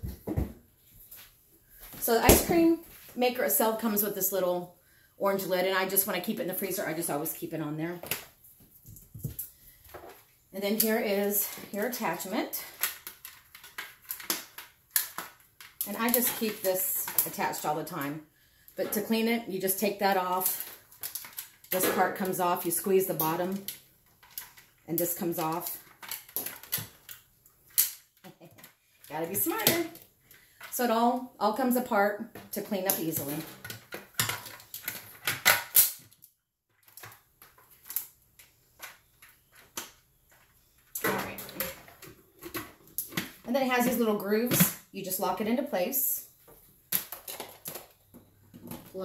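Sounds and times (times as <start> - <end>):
plastic parts knocking and clicking: 32.3 - 44.8.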